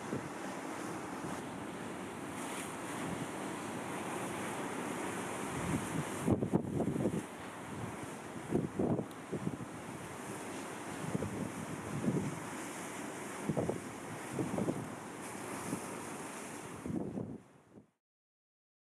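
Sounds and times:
sea surf rushing: 0:00.0 - 0:17.4
wind buffeting microphone: 0:05.5 - 0:12.5, 0:13.4 - 0:14.9, 0:16.7 - 0:17.4.

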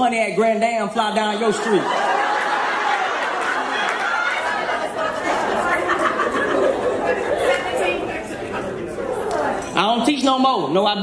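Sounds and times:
audience laughing and chattering: 0:01.2 - 0:10.3.

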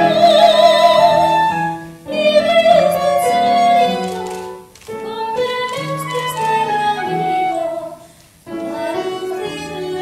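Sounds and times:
instrumental accompaniment: 0:00.0 - 0:10.0
woman singing: 0:00.0 - 0:10.0.

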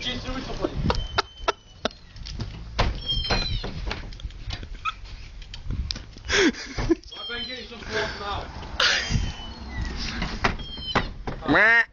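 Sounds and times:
stifled breathy laughter: 0:06.2 - 0:07.0, 0:08.8 - 0:09.5.

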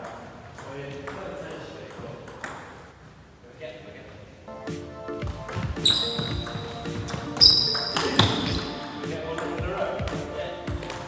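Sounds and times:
table tennis ball hit: 0:00.0 - 0:02.8, 0:05.4 - 0:11.0
table tennis ball bouncing: 0:00.0 - 0:03.0, 0:05.2 - 0:11.0
background music: 0:04.4 - 0:11.0.

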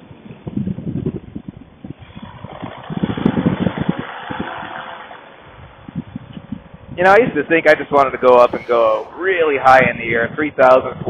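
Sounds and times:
wind buffeting microphone: 0:00.0 - 0:04.8, 0:05.4 - 0:11.0.

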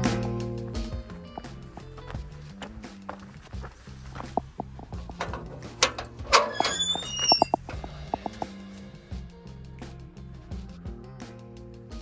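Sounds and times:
background music with bass line: 0:00.0 - 0:12.0
metal clunks: 0:04.3 - 0:08.5
metal door squealing open: 0:05.2 - 0:08.3.

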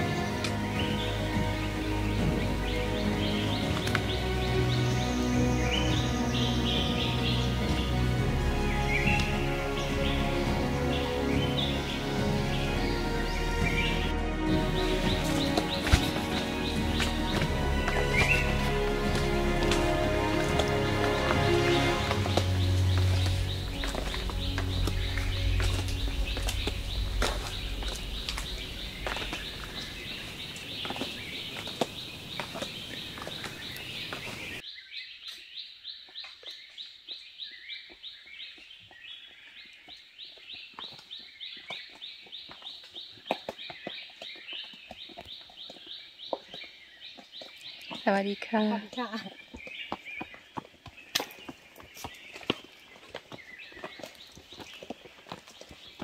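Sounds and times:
background music: 0:00.0 - 0:30.4
birds chirping: 0:00.0 - 0:56.0.

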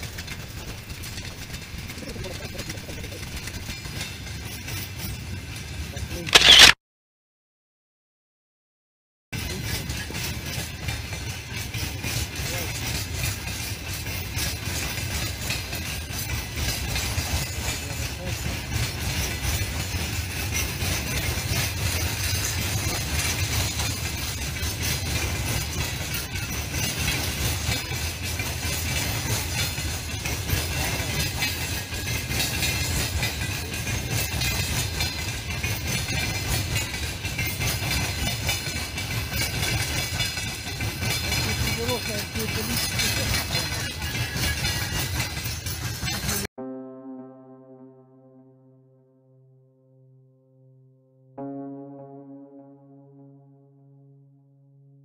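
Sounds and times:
wheels clattering over rails: 0:00.0 - 0:06.6, 0:09.4 - 0:46.5
freight train rumbling past: 0:09.4 - 0:46.4.

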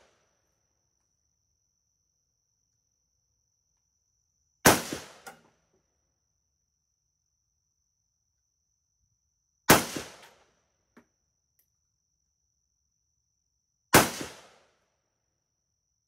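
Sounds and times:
rifle shots with echo: 0:04.7 - 0:05.4, 0:09.7 - 0:10.4, 0:14.0 - 0:14.7.

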